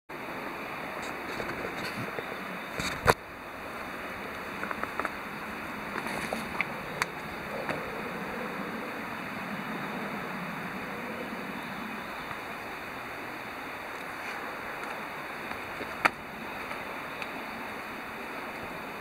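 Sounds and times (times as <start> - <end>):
rustling through undergrowth: 1.0 - 8.9, 13.8 - 18.0
steady rushing background: 1.0 - 19.0
footsteps in undergrowth: 4.4 - 8.0, 13.9 - 17.4.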